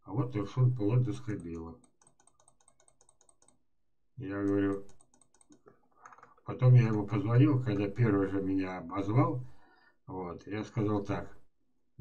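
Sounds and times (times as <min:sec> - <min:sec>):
rapid computer clicking: 0:01.3 - 0:03.6, 0:04.4 - 0:07.1.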